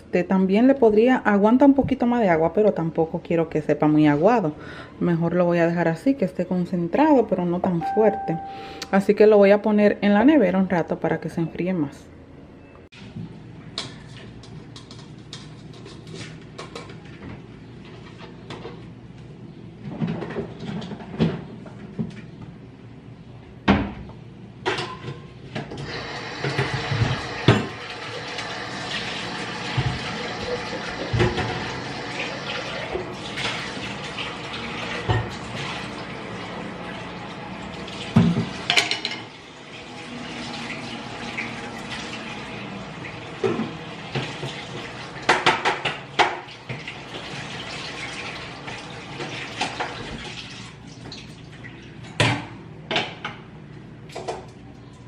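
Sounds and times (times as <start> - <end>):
tap running into sink: 29.6 - 31.8
dishes clinking in sink: 38.2 - 39.4.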